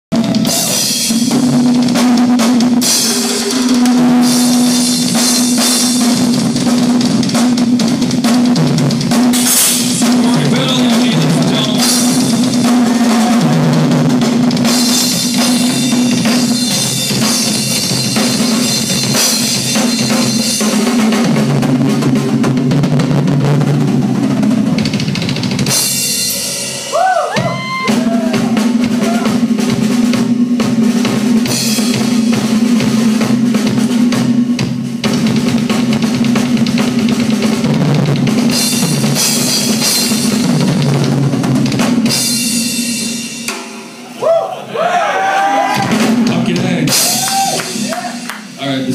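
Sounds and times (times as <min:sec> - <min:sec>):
rock drum kit solo: 0:00.1 - 0:48.9.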